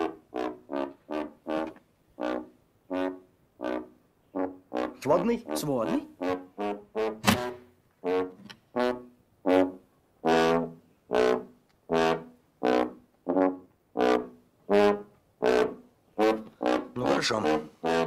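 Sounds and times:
tuba playing short notes: 0.0 - 18.0.

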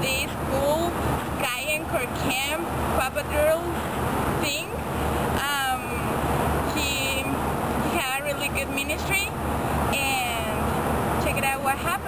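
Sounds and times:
woman talking: 0.0 - 3.8, 4.4 - 4.8, 5.4 - 6.1, 6.7 - 12.0
road traffic noise: 0.0 - 12.0.

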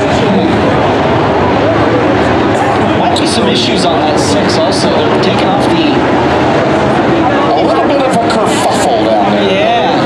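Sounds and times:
voice over loudspeaker: 0.0 - 0.8, 1.7 - 6.1, 7.0 - 10.0
race car engines: 0.0 - 10.0.

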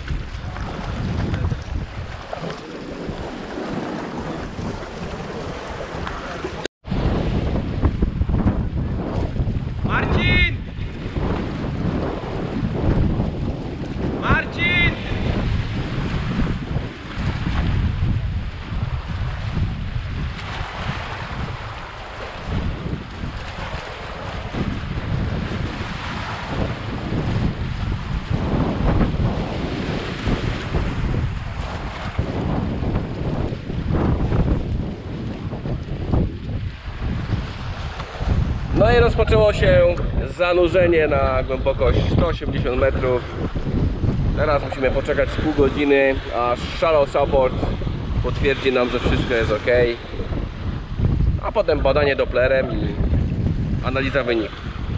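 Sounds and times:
sea waves on rocks: 0.0 - 54.9
wind buffeting microphone: 0.0 - 54.9.

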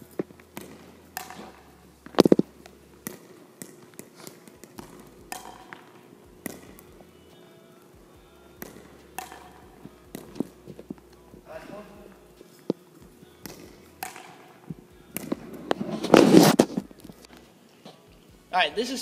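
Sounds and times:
paddle hitting ball: 0.0 - 17.3
ball bouncing on hardwood floor: 0.1 - 7.2, 8.2 - 11.5, 13.0 - 17.3.

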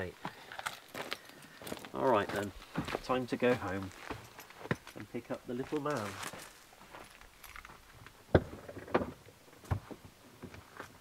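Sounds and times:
footsteps on gravel: 0.1 - 8.2.

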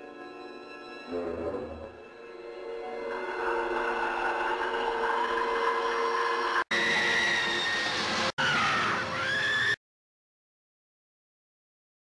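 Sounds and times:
eerie shrill wavering tones: 1.1 - 9.7
high sustained wail: 1.1 - 9.8
rushing noise: 3.0 - 9.6.

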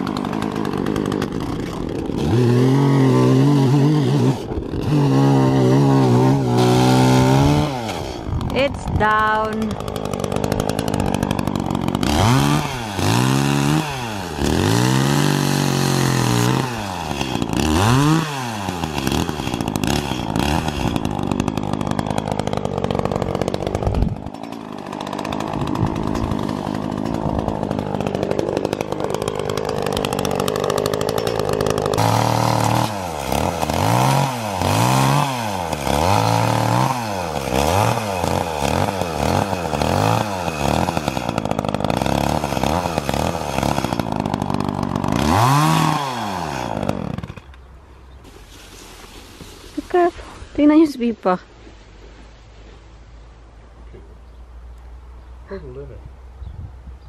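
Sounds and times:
chainsaw cutting tree trunk: 0.0 - 49.2.

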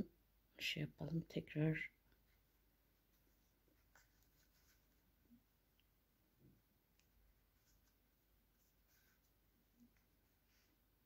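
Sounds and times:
fingers rubbing yarn: 3.0 - 5.2.

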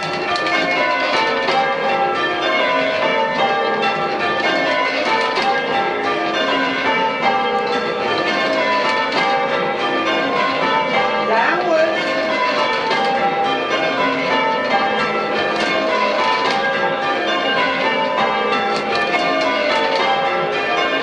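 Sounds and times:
church bells ringing: 0.0 - 21.0.

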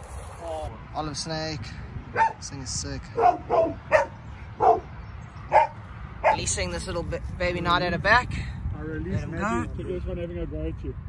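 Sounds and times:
dog barking: 2.1 - 2.4, 3.2 - 4.9, 5.5 - 6.5.

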